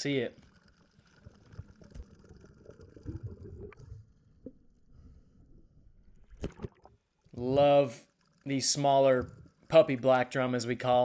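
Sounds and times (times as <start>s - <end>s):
underwater rumble: 0.4s - 7.5s.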